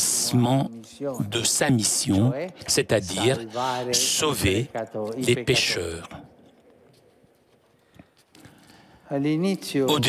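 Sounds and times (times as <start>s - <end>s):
person speaking: 0.0s - 6.4s, 9.1s - 10.0s.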